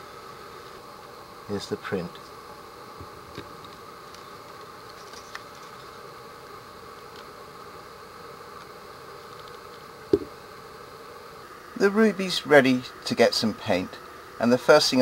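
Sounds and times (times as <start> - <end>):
background hiss: 0.0 - 15.0.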